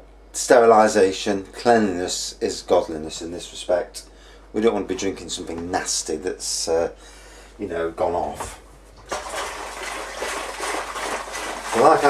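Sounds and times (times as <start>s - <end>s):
liquid rushing in plastic barrel: 9.1s - 12.0s.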